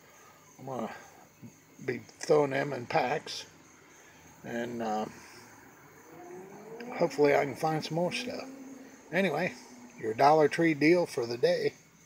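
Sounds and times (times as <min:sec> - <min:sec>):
faint motor hum rising: 0:06.1 - 0:10.6.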